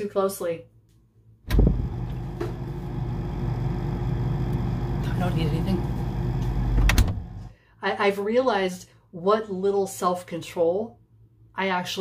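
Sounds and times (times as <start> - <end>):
refrigerator door shutting: 1.5 - 2.7, 6.5 - 7.4
refrigerator rumble: 1.5 - 7.5.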